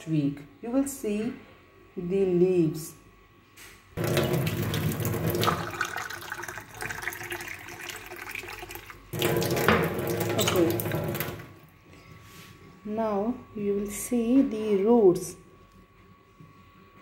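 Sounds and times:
water filling a glass: 4.0 - 11.6
tap water running into sink: 4.0 - 11.7.

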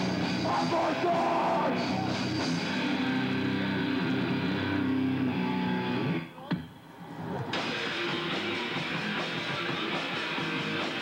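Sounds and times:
heavy metal band playing live: 0.0 - 6.2, 7.6 - 11.0
electric guitar playing: 1.9 - 6.2, 7.6 - 11.0.

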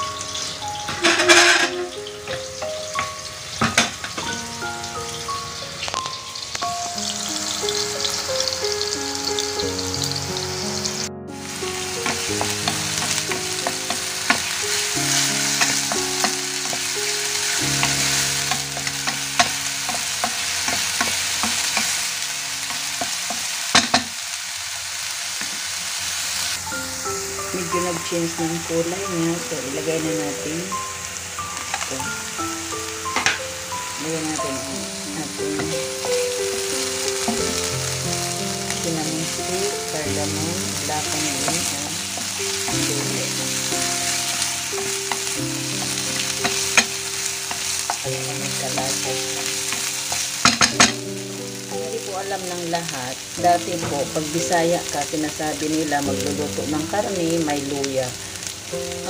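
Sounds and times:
background music of held notes: 0.0 - 23.9, 26.6 - 59.0
food sizzling in hot oil: 0.0 - 59.0
utensil clicking against pan: 12.0 - 22.0, 44.8 - 51.0.

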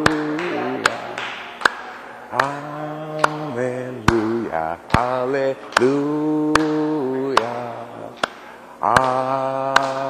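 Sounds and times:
hand claps: 0.0 - 2.6, 3.2 - 3.5, 4.1 - 10.0
man singing long notes: 2.3 - 8.2.

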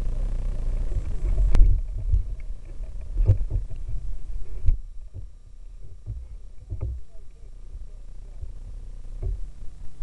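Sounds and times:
low rumble: 0.0 - 10.0
soft knocks on inflatable boat: 3.1 - 3.8, 6.0 - 7.0, 9.2 - 9.5.

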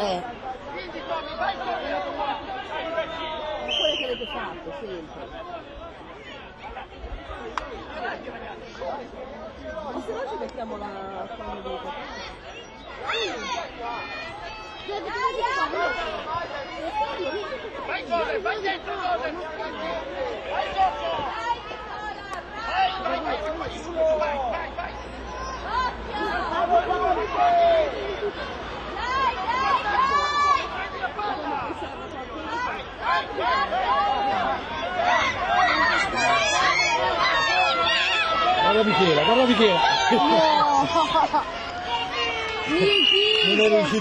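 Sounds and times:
children and adults chattering: 0.0 - 44.0.

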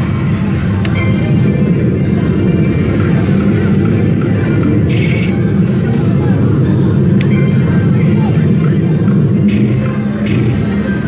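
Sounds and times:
casino background noise: 0.0 - 11.0
slot machine reels spinning: 0.0 - 11.0.

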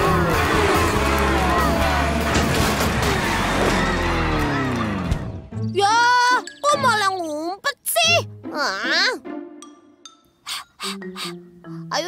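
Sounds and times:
energetic background music: 0.0 - 12.0.

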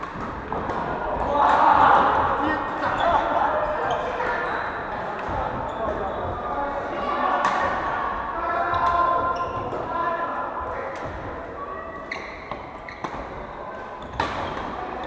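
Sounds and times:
players calling and chattering: 0.0 - 15.0.

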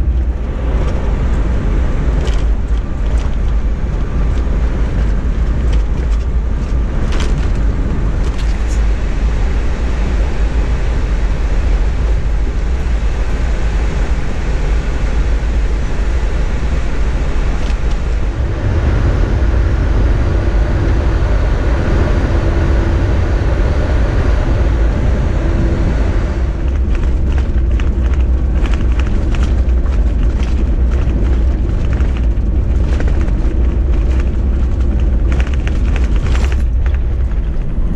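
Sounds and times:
tyres rumbling on dirt road: 0.0 - 37.9.

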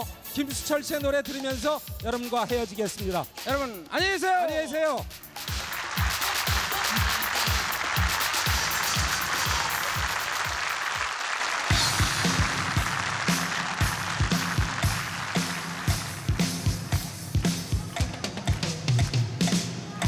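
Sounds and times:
audience applause: 5.4 - 19.3
rock band playing: 11.6 - 19.8.

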